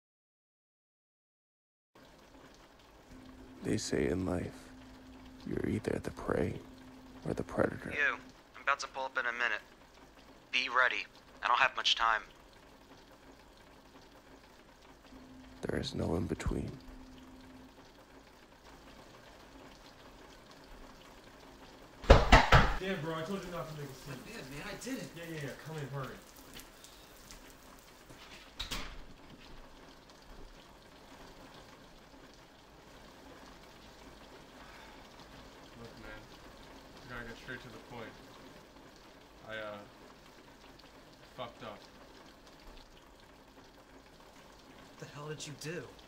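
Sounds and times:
faint hiss of rain: 2.0 - 46.0.

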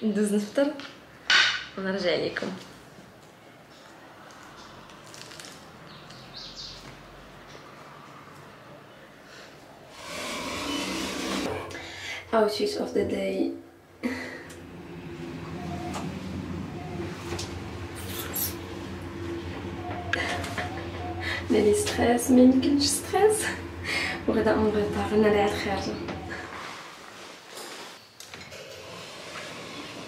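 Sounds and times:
lift cabin hum: 10.0 - 12.0, 14.0 - 27.2
fixed tones: 14.4 - 26.6.

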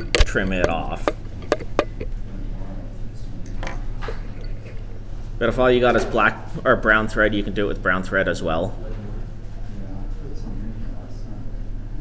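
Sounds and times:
handling clicks: 0.0 - 2.1
steady low hum: 0.0 - 12.0.

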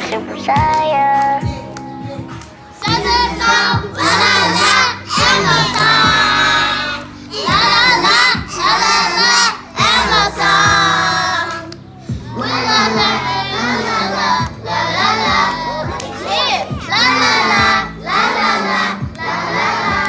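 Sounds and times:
children singing and shouting: 0.0 - 20.0
recorded pop song: 0.0 - 20.0.

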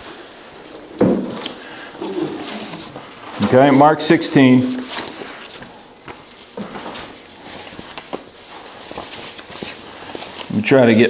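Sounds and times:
paper rustling and shuffling: 0.0 - 11.0.

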